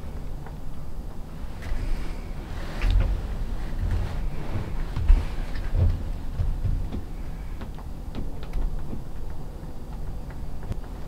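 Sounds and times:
low microphone rumble: 0.0s - 8.7s
faint rustles and clicks: 0.0s - 11.0s.

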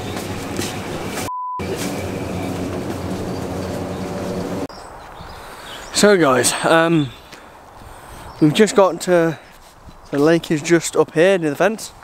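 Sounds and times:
low rumbling hum: 0.0s - 4.7s
outdoor background noise: 0.0s - 12.0s.

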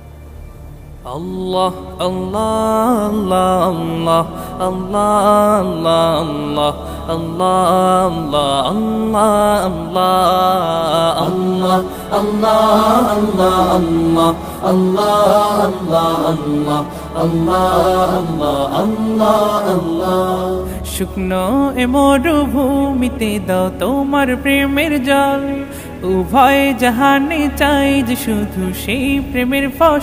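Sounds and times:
low drone: 0.0s - 30.0s
person singing devotional song: 1.0s - 30.0s.

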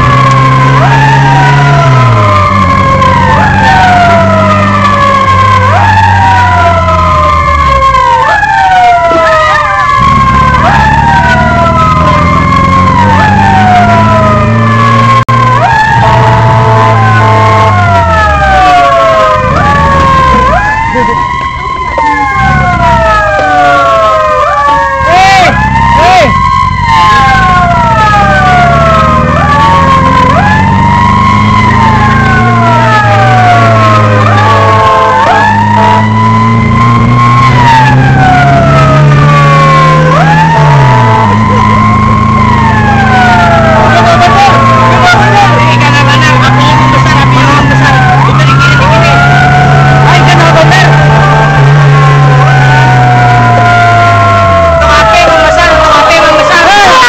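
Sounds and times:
emergency sirens wailing: 0.0s - 57.0s
vehicle engine: 0.0s - 57.0s.

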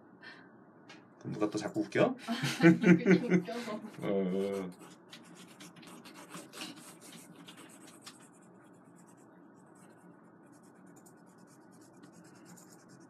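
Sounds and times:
pencil scratching on paper: 4.4s - 13.0s.

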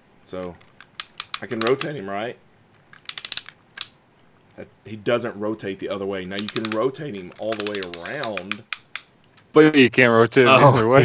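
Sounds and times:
sharp plastic ratchet clicks: 0.4s - 2.0s, 2.8s - 4.0s, 6.2s - 9.5s.

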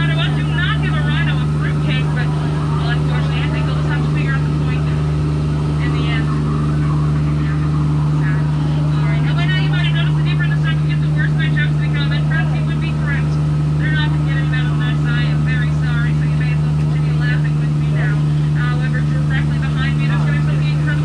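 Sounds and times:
boat engine humming: 0.0s - 21.0s.

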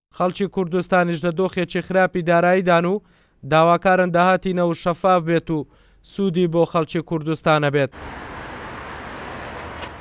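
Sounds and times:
dense road traffic: 7.9s - 10.0s.

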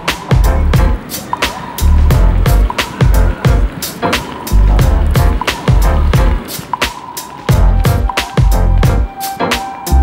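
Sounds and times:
fast beat music with heavy bass: 0.0s - 10.0s.

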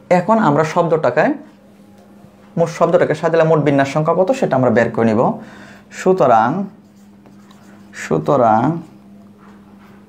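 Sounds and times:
man speaking: 0.0s - 1.5s, 2.6s - 6.8s, 7.9s - 9.0s
steady low hum: 0.0s - 10.0s
pen scratching while writing: 6.8s - 8.3s.

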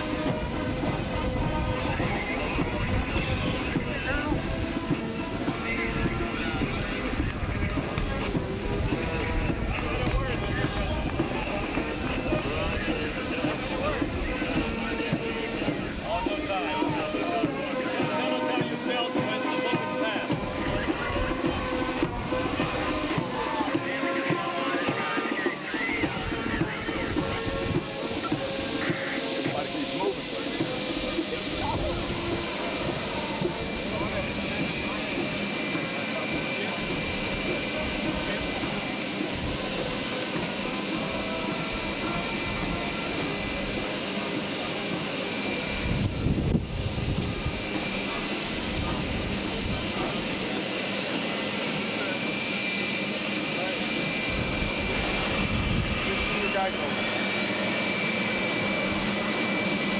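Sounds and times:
jet engines running: 0.0s - 59.9s
wind buffeting microphone: 45.7s - 48.0s, 54.2s - 56.2s.

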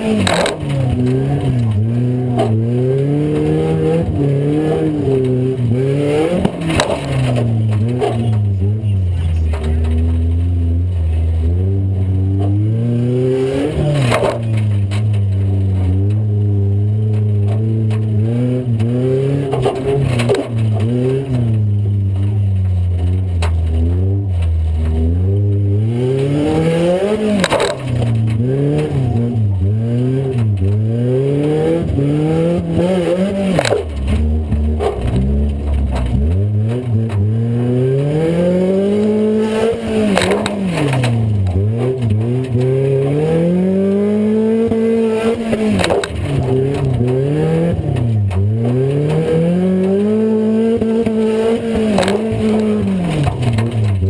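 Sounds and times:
car engine revving: 0.0s - 54.0s.

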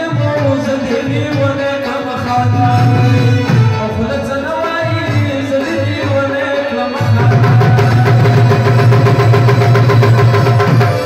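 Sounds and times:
harmonium drone: 0.0s - 11.0s
rabab strummed: 0.0s - 11.0s
tabla: 0.0s - 11.0s.

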